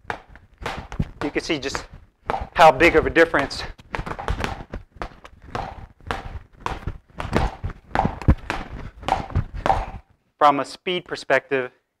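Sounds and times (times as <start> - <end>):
gloved punches on reflex bag: 0.0 - 3.0, 3.9 - 10.0.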